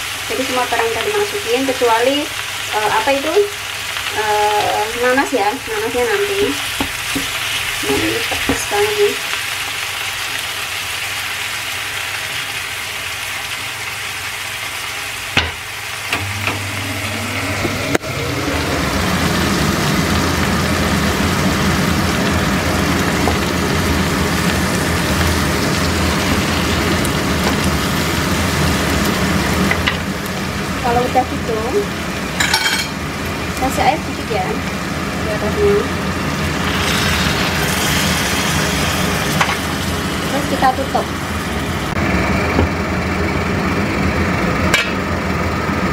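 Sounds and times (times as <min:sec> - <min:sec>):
fish sizzling in a frying pan: 0:00.0 - 0:42.5.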